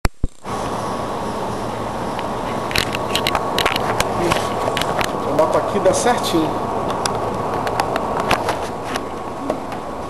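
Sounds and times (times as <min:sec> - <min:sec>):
steady hiss: 0:00.2 - 0:10.0
faint high hum: 0:00.3 - 0:10.0
handling clicks and scrapes: 0:02.5 - 0:05.2.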